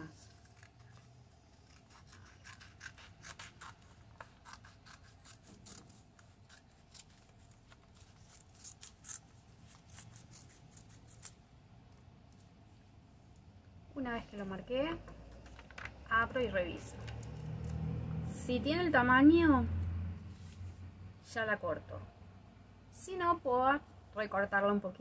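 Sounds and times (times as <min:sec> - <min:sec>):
scissors snipping paper: 0:00.0 - 0:11.4.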